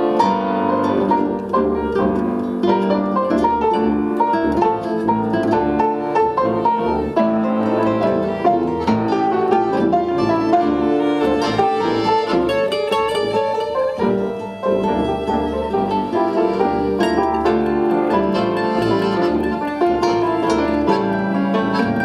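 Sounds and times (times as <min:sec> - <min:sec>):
acoustic band instrumental: 0:00.0 - 0:22.0
piano: 0:00.0 - 0:22.0
violin: 0:00.0 - 0:22.0.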